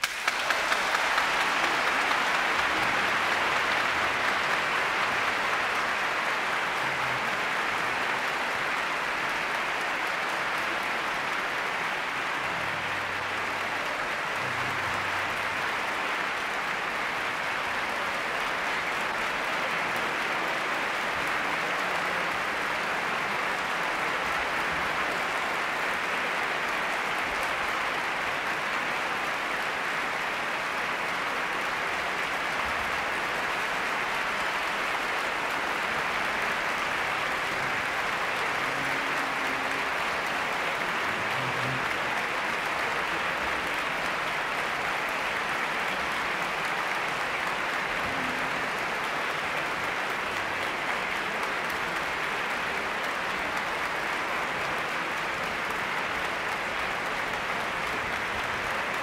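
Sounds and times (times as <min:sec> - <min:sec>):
audience applauding: 0:00.0 - 0:59.0.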